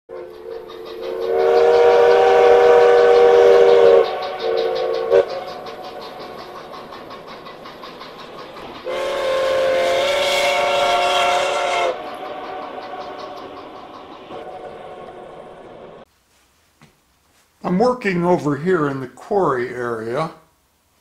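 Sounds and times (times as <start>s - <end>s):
steam locomotive whistle: 0.1s - 6.4s, 8.8s - 16.0s
steam engine chuffing: 0.1s - 16.1s.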